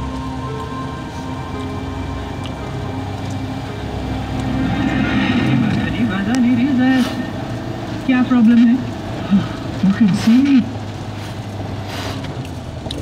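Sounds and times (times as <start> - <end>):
car engine and road drone: 0.0 - 13.0.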